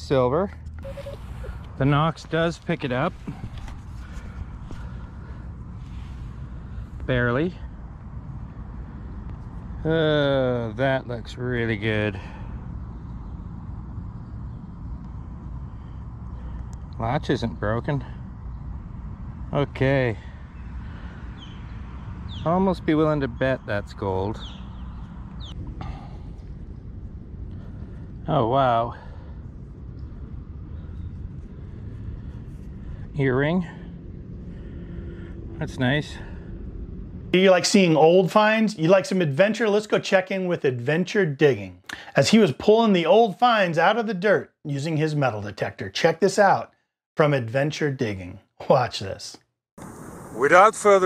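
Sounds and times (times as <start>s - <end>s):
low outdoor rumble: 0.0s - 38.0s, 49.8s - 51.0s
faint clicks and rustles: 0.5s - 4.9s
high falling bird chirp: 20.2s - 26.0s.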